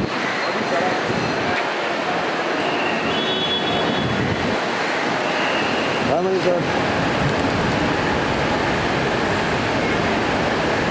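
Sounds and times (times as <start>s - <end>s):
busy terminal noise: 0.0s - 10.9s.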